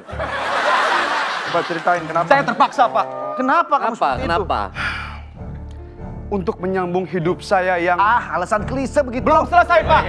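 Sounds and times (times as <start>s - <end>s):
group of people laughing: 0.0s - 2.9s.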